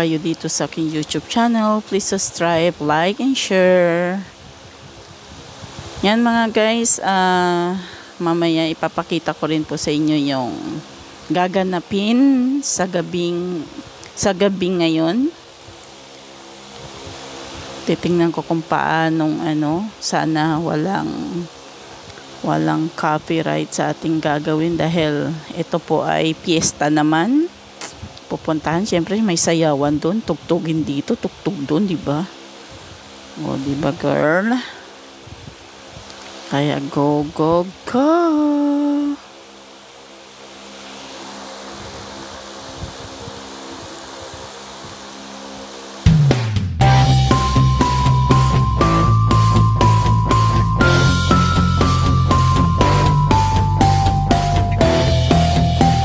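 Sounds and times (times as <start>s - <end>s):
road noise: 43.4s - 56.0s
vehicle engine running: 46.1s - 56.0s.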